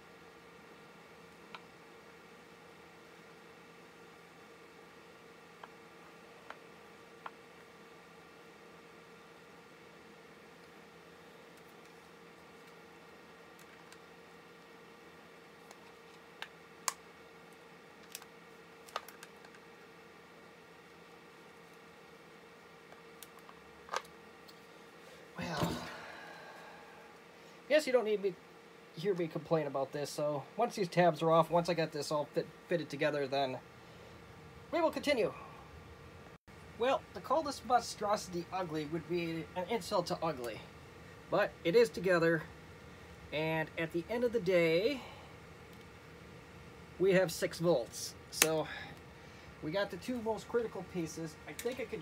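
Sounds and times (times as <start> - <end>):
faint steady hum: 0.0 - 52.0.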